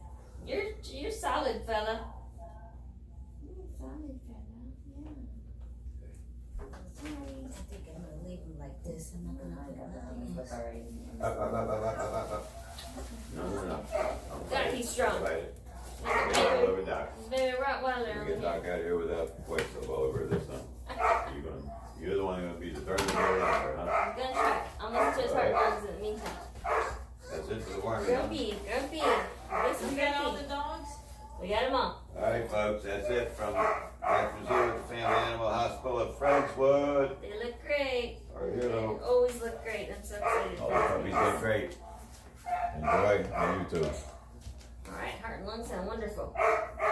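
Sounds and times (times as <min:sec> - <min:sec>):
puppy crying and whining: 0:26.7 - 0:28.4.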